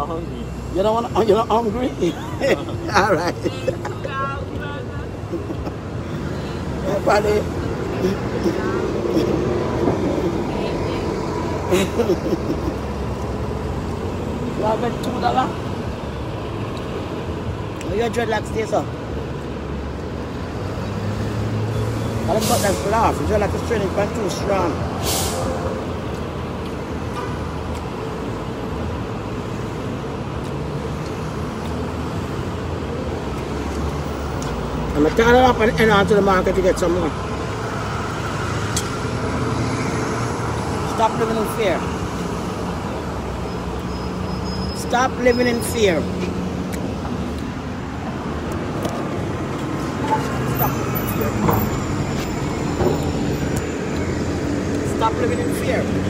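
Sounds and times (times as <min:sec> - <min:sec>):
city street traffic rumble: 0:00.0 - 0:56.0.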